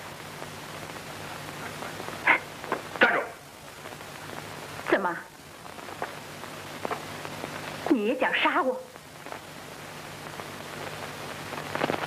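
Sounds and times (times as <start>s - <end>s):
film soundtrack hiss and hum: 0.0s - 12.0s.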